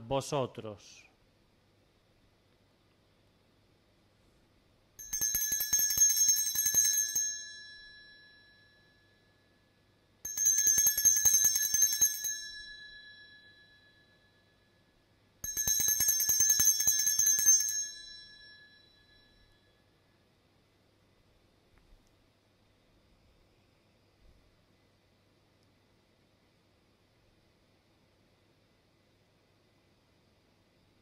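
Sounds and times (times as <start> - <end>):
altar bells jingling: 10.3 - 13.9, 15.4 - 19.5.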